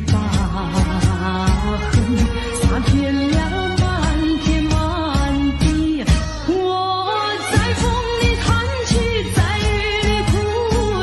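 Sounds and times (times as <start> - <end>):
pop song with band and drums: 0.0 - 11.0.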